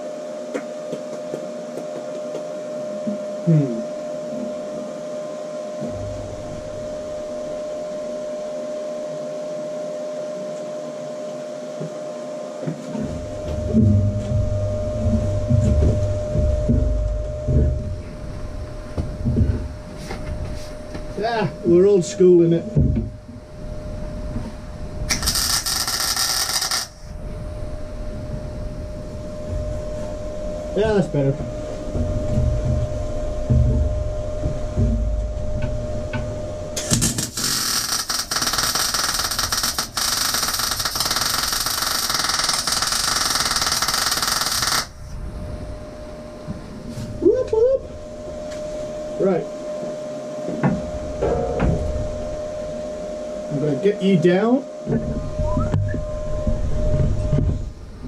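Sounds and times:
welder arc crackling and hissing: 25.1s - 27.2s, 36.8s - 45.2s.

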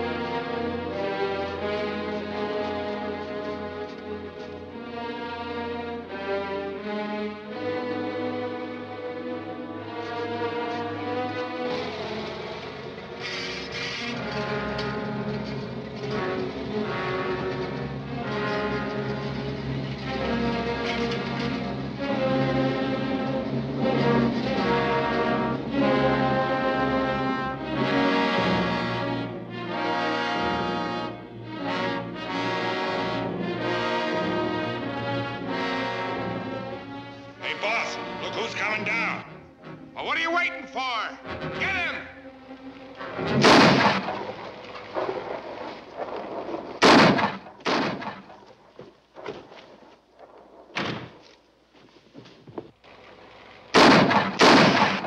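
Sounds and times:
orchestral music with brass: 0.0s - 48.6s, 53.1s - 55.0s.

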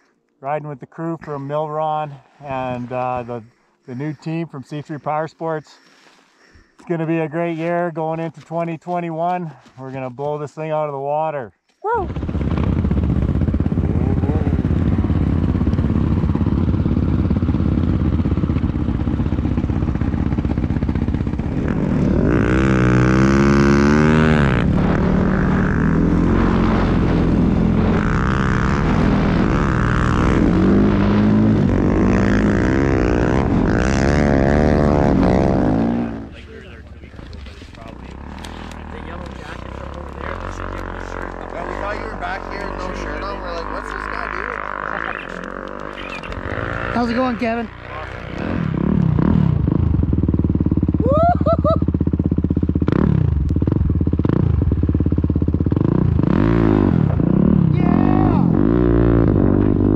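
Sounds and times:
snowbike engine revving: 1.0s - 5.6s, 11.9s - 59.9s.

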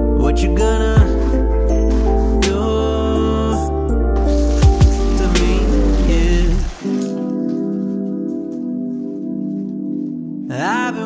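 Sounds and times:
background music: 0.0s - 11.0s
water pouring into plastic bucket: 4.2s - 8.1s.

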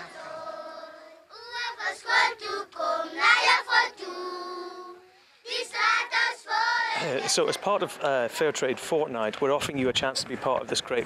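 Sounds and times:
children singing: 0.0s - 7.9s.

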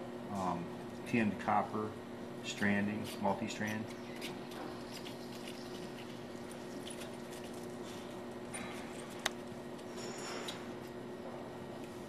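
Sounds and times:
soldering unit electrical hum: 0.0s - 12.0s.

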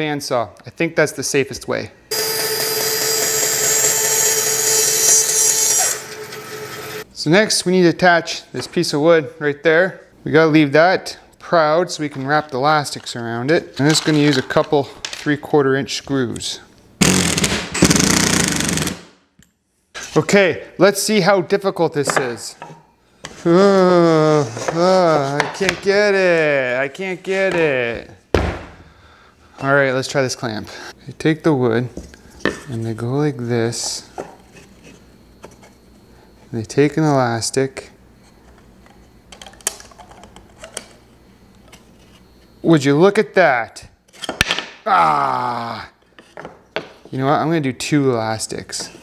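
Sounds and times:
impact driver hammering screw: 2.1s - 6.5s
faint steady hum: 19.3s - 49.0s.

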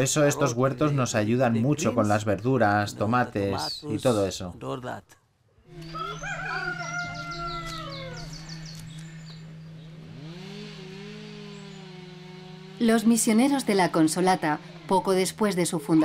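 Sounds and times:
rooster crowing: 5.7s - 8.8s.

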